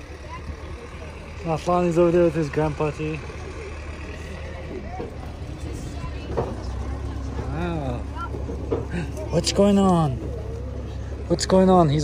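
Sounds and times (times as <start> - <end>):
low engine drone: 0.0 - 12.0
people chatting: 0.0 - 12.0.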